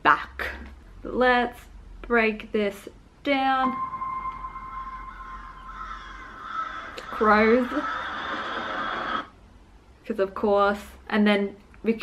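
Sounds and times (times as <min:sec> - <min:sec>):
fainter higher note: 0:03.6 - 0:06.4
held high note: 0:03.6 - 0:06.4
light background wash: 0:03.7 - 0:07.4.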